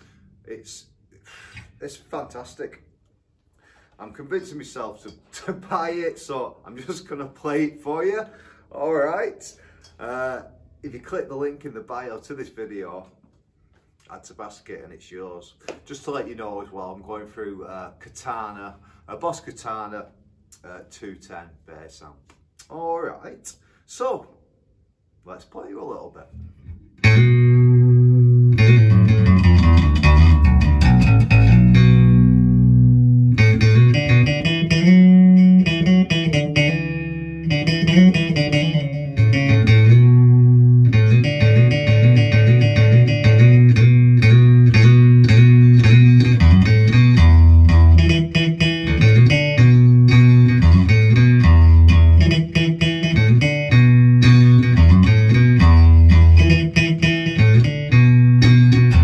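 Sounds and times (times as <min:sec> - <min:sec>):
electric bass plucked: 0:26.3 - 0:59.0.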